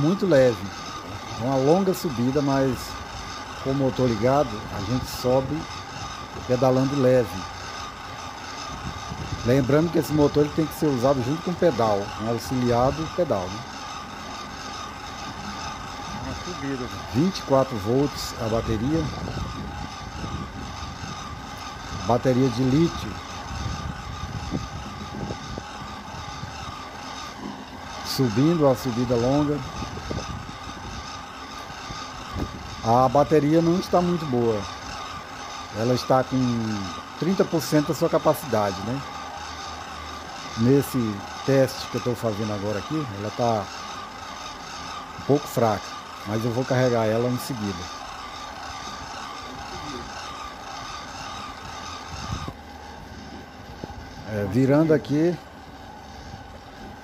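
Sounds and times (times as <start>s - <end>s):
electric bicycle motor whining: 0.0s - 57.0s.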